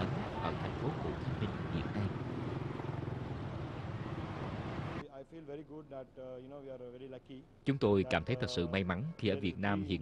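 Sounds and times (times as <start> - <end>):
motorbike engines passing: 0.0 - 5.0.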